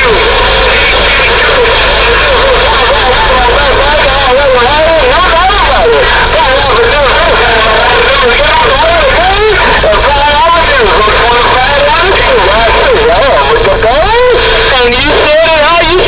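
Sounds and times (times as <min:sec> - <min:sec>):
distorted radio voices: 0:00.0 - 0:16.0
low hum: 0:00.0 - 0:16.0
radio static: 0:00.0 - 0:16.0.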